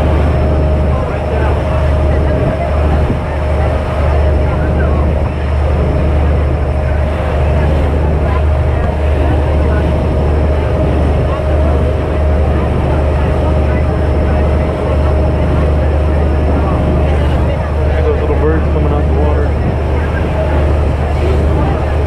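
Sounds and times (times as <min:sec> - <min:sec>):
motorboat engine drone: 0:00.0 - 0:22.0
wake water rushing along hull: 0:00.0 - 0:22.0.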